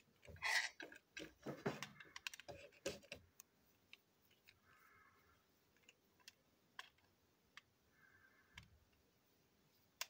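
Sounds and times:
plastic toy train parts clicking: 0.0 - 3.5, 5.8 - 7.7.

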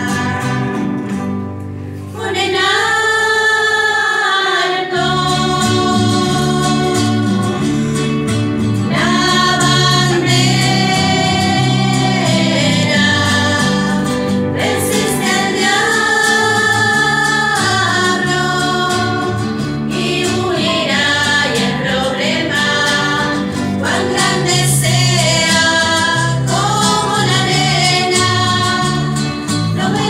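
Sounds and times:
women's choir singing a hymn: 0.0 - 1.1, 2.1 - 30.0
acoustic guitar: 0.0 - 30.0.

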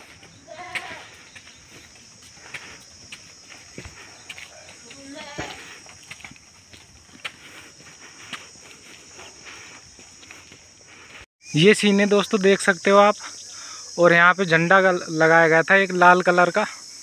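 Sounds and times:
footsteps crunching on dirt path: 0.0 - 11.3
steady high hiss: 10.2 - 17.0.

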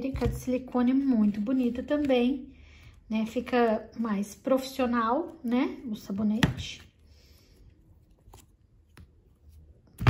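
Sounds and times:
mould peeling handling sounds: 0.0 - 2.3, 6.8 - 10.0.

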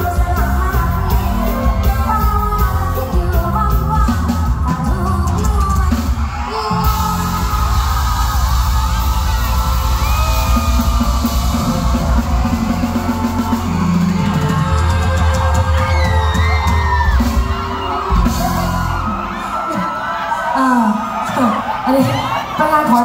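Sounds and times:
loud live band music: 0.0 - 23.0
people shouting: 6.3 - 22.6.

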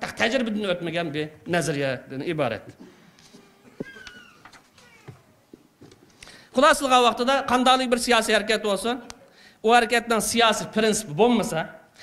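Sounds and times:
faint high squeak: 3.4 - 5.2.

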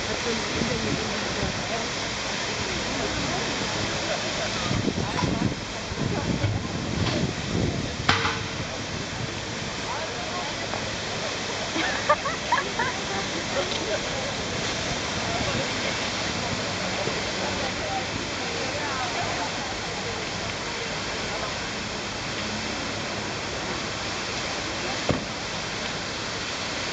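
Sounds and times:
fountain splashing water: 0.0 - 26.9
people talking faintly: 0.0 - 26.9.

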